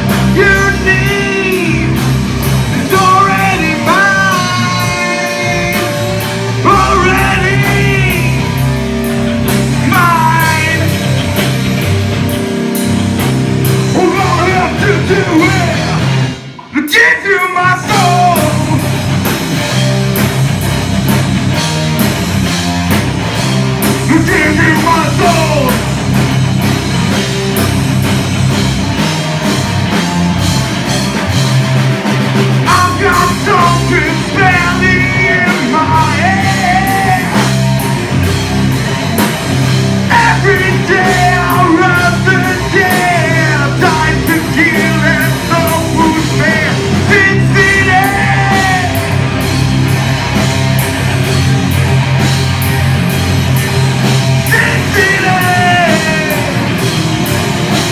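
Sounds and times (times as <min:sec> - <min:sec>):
live rock band playing: 0:00.0 - 0:57.9
person singing: 0:00.1 - 0:02.1, 0:02.7 - 0:08.7, 0:09.7 - 0:11.2, 0:14.0 - 0:19.0, 0:24.0 - 0:25.9, 0:32.6 - 0:37.6, 0:40.1 - 0:49.2, 0:54.4 - 0:56.8.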